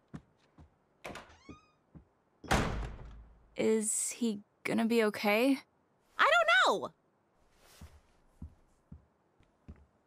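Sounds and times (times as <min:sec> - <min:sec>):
footsteps on wooden stairs: 0:00.0 - 0:00.8, 0:01.9 - 0:02.2, 0:07.8 - 0:10.0
creak falling in pitch: 0:01.1 - 0:01.9
door slamming with low boom: 0:02.5 - 0:03.4.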